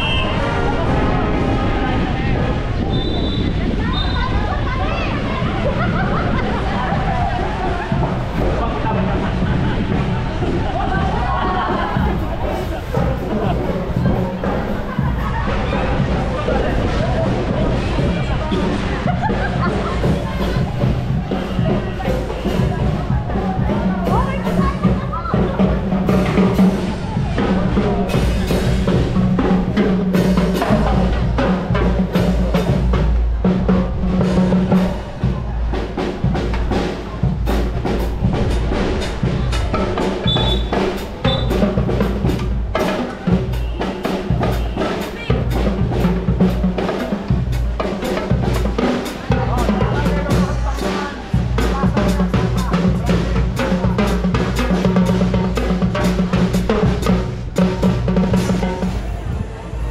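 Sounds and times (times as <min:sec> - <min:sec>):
marching band playing: 0:00.0 - 0:59.9
drums and cymbals beat: 0:03.4 - 0:59.9
saxophones and low brass: 0:12.0 - 0:59.9.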